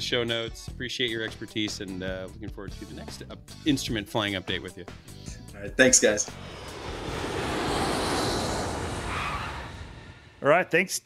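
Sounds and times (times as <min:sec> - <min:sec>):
whooshing transition effect: 0:06.2 - 0:10.4.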